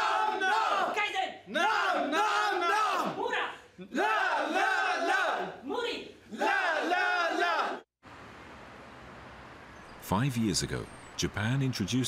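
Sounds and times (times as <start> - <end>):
men shouting a chant: 0.0 - 7.8.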